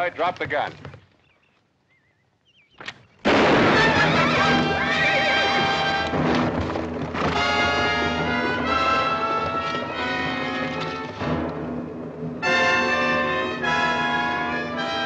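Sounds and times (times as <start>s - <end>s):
dramatic orchestral film score: 3.8s - 15.0s.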